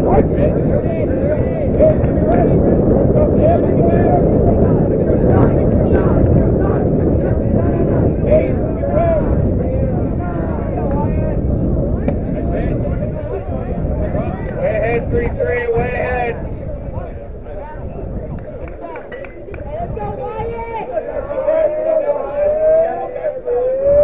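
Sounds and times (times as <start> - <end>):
steady low rumble: 0.0 - 22.1
muffled voices and calls: 0.0 - 24.0.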